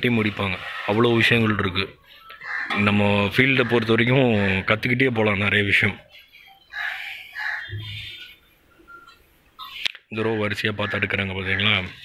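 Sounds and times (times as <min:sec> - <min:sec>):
faint bird calls: 0:02.1 - 0:04.2, 0:06.0 - 0:10.0.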